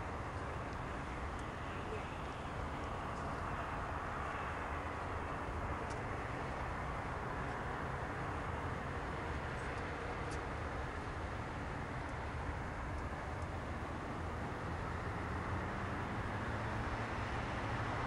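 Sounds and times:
faint ticks: 9.6 - 10.5.

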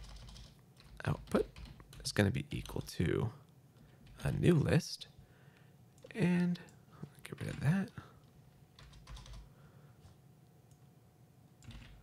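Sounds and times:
computer keyboard keystrokes: 0.0 - 2.9, 8.8 - 9.5, 11.6 - 12.0.

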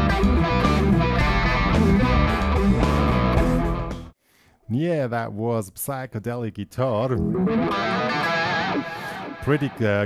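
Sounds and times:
electric guitar with effects: 0.0 - 4.1, 7.2 - 10.0.

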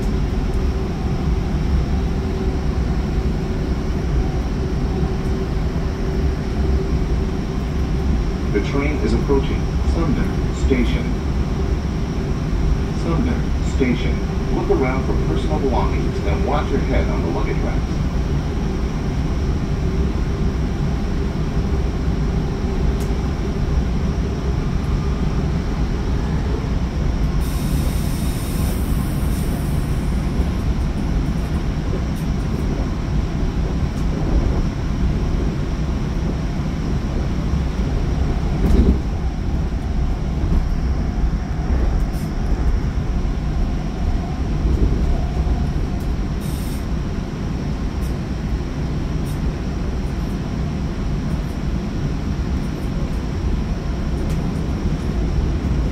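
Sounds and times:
steel wheels rumbling on rail: 0.0 - 55.9.

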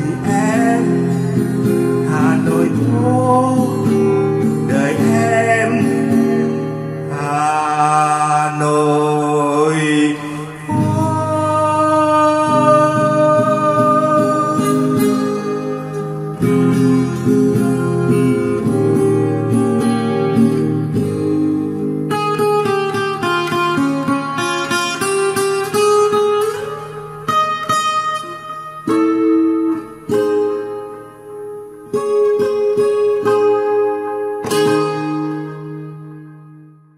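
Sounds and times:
acoustic guitar playing: 0.0 - 36.9.

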